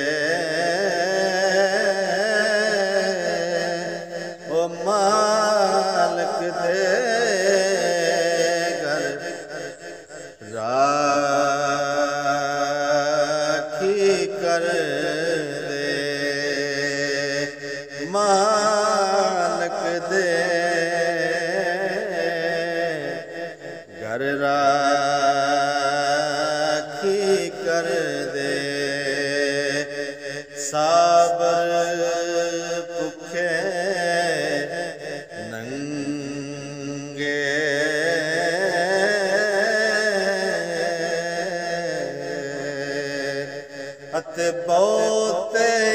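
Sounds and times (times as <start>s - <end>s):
man singing chant-like: 0.0s - 45.9s.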